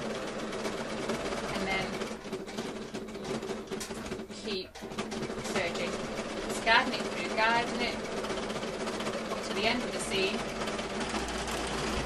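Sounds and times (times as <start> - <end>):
overlock machine stitching: 0.0 - 12.0.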